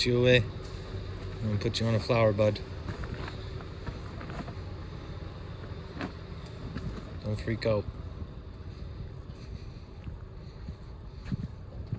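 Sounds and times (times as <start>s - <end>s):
low background rumble: 0.0s - 11.9s.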